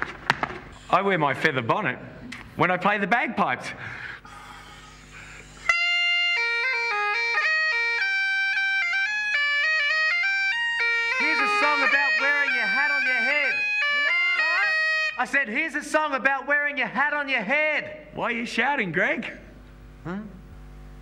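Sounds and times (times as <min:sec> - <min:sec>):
man talking: 0:00.9 - 0:03.8, 0:11.2 - 0:20.4
bagpipes playing: 0:05.7 - 0:15.4.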